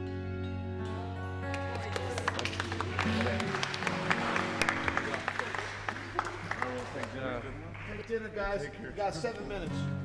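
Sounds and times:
scattered clapping: 0:01.4 - 0:08.4.

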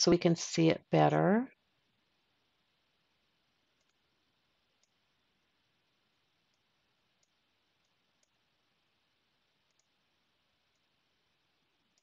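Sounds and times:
computer mouse clicks: 0:03.7 - 0:04.0, 0:04.8 - 0:05.0, 0:06.4 - 0:08.4, 0:09.6 - 0:10.0, 0:10.7 - 0:10.9.

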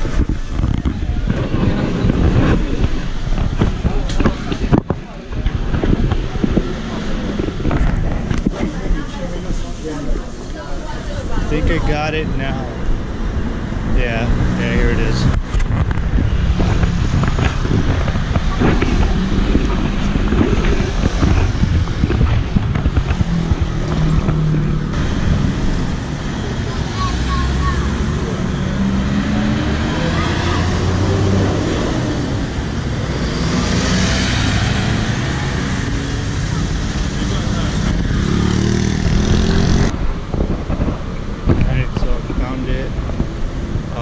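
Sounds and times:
cars and scooters passing: 0:00.0 - 0:44.0
low traffic rumble: 0:00.0 - 0:44.0.

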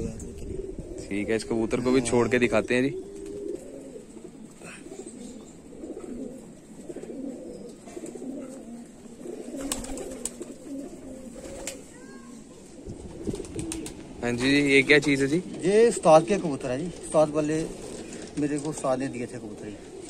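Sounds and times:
pigeons cooing: 0:00.0 - 0:20.0.

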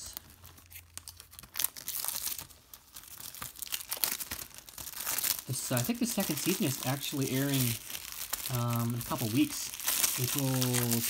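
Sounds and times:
plastic shrink wrap tearing: 0:00.0 - 0:11.0.

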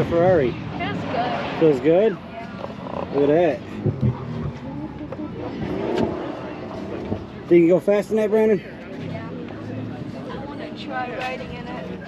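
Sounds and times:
voices: 0:00.0 - 0:12.0
car engine accelerating: 0:00.4 - 0:07.8.

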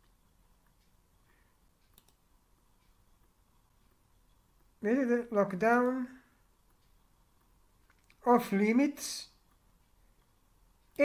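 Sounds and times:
computer mouse click: 0:01.8 - 0:03.3.

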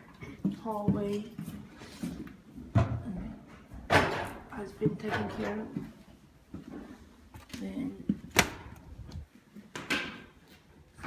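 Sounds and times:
footsteps on bare subfloor: 0:00.0 - 0:02.7, 0:05.6 - 0:09.5.

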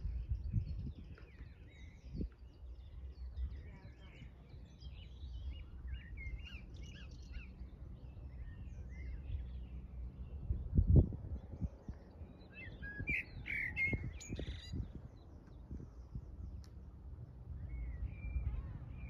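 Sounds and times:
small birds chirping: 0:00.0 - 0:19.0
steady low rumble: 0:00.0 - 0:19.0.

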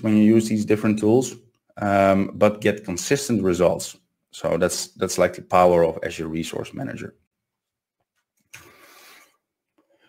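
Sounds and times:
man drawing breath: 0:08.6 - 0:10.0.

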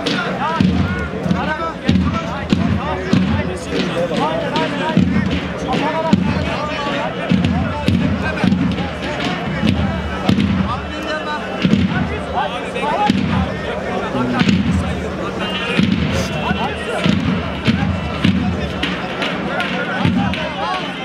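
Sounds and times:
heavy bass drum beats: 0:00.0 - 0:21.0
voices: 0:00.0 - 0:21.0.

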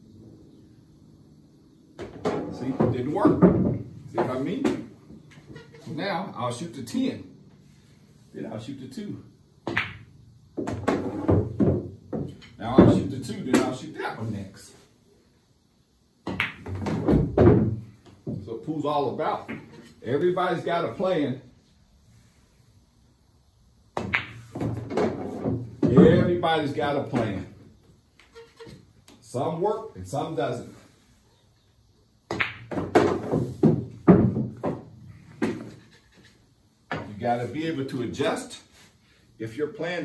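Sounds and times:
pool balls clicking: 0:02.0 - 0:05.9, 0:09.6 - 0:13.8, 0:16.2 - 0:18.4, 0:23.9 - 0:27.6, 0:32.3 - 0:36.1
pool cue striking ball: 0:09.6 - 0:13.8, 0:16.3 - 0:17.7, 0:24.0 - 0:26.4, 0:32.3 - 0:35.7.

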